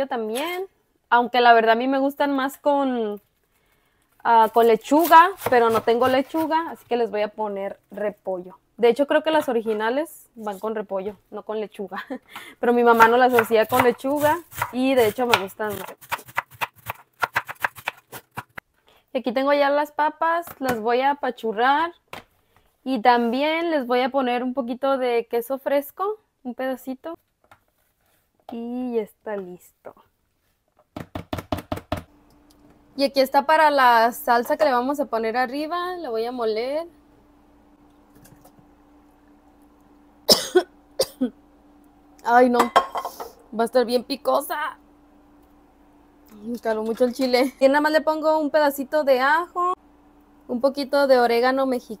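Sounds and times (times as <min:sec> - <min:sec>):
knife shredding cabbage on board: 0:12.9 - 0:18.6
woman coughing: 0:40.3 - 0:41.3.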